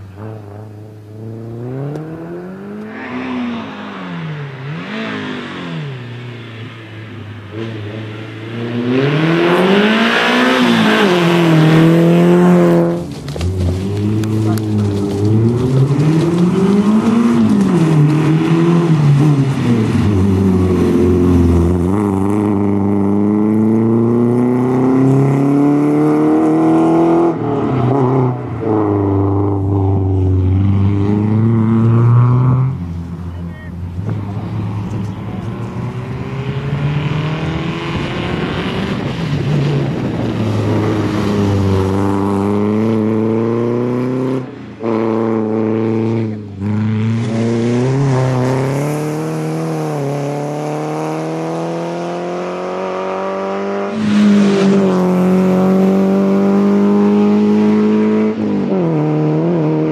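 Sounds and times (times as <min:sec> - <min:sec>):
rally car engine revving hard: 0:07.5 - 0:32.8, 0:35.6 - 0:59.9.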